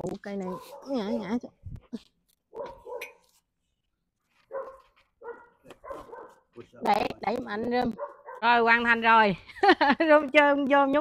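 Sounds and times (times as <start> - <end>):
dog barking: 0.4 - 1.0, 2.5 - 3.2, 4.5 - 6.5, 7.9 - 8.5.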